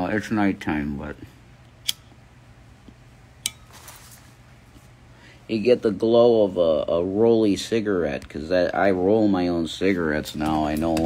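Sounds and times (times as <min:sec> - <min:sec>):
lighter click: 0:01.8 - 0:02.1.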